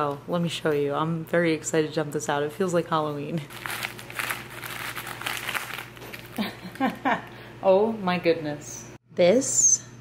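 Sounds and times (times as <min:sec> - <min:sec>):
foil-wrapped chocolates crinkling: 0:03.5 - 0:07.0.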